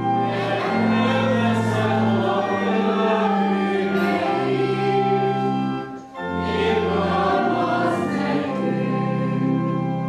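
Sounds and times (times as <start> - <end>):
group singing a hymn: 0.0 - 10.0
organ: 0.0 - 10.0.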